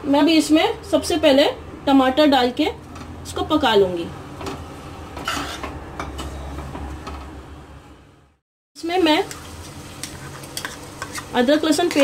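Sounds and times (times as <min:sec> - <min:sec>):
food sizzling in oil: 0:08.8 - 0:12.0.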